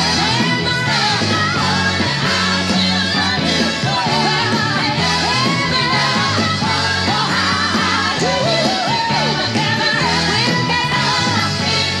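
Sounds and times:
band playing: 0.0 - 12.0
woman singing soul song: 0.0 - 12.0.

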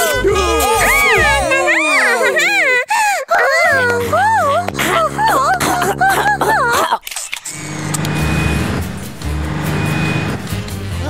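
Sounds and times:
background music: 0.0 - 6.9, 7.7 - 11.0.

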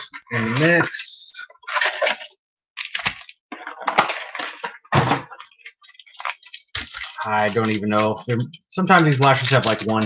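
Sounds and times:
packaging tearing and crinkling: 1.6 - 10.0.

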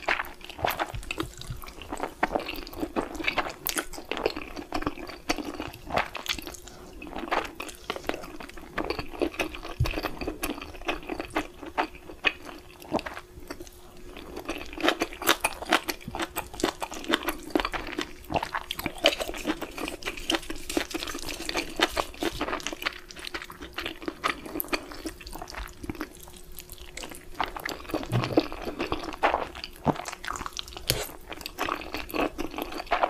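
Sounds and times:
slurping and chewing noodles: 0.0 - 33.0.

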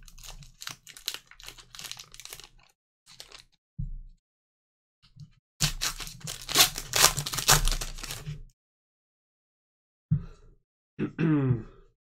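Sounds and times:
foil wrapper tearing and crinkling: 0.0 - 3.6, 5.6 - 8.4.

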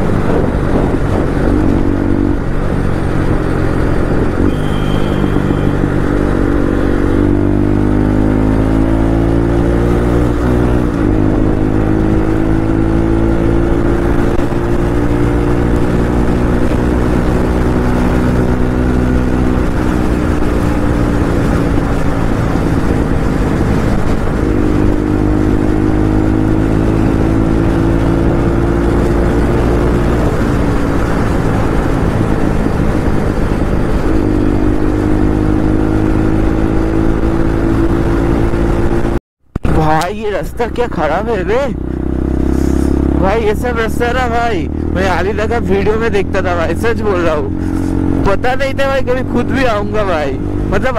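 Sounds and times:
motorcycle engine at speed: 0.0 - 50.9.

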